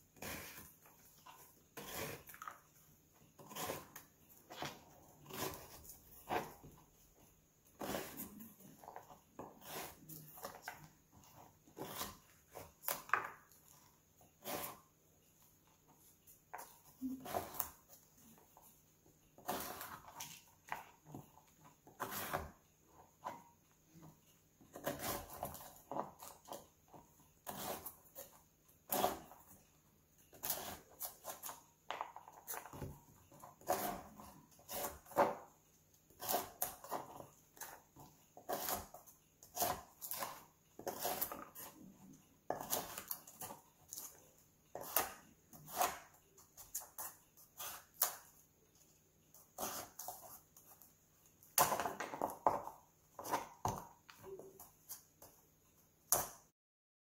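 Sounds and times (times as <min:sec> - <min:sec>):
knife scraping coconut shell: 0:00.1 - 0:06.9, 0:07.7 - 0:14.9, 0:16.5 - 0:18.4, 0:19.4 - 0:20.5, 0:21.9 - 0:23.4, 0:24.7 - 0:29.6, 0:30.3 - 0:31.6, 0:32.2 - 0:35.5, 0:36.1 - 0:48.3, 0:49.4 - 0:50.8.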